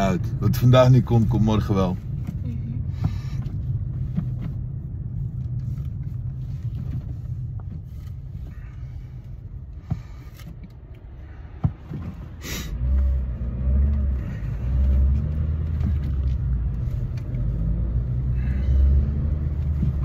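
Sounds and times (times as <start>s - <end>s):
car engine and tyre rumble: 0.0s - 20.0s.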